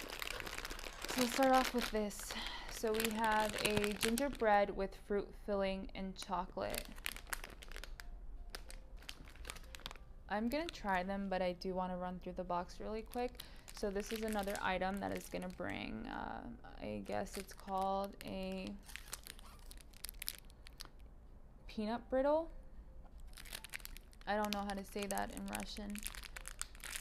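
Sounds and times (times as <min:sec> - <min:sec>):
plastic snack packet crinkling: 0:00.0 - 0:04.6, 0:06.6 - 0:11.0, 0:12.7 - 0:15.8, 0:17.0 - 0:21.0, 0:23.2 - 0:27.0.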